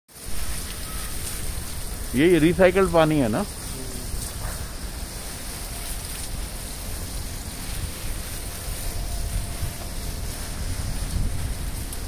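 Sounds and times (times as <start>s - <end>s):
spraying water hiss: 0.1s - 12.0s.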